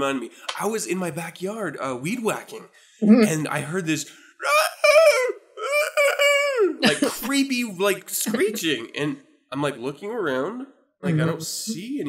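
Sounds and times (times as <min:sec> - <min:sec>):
man's falsetto screech: 0:04.4 - 0:06.8.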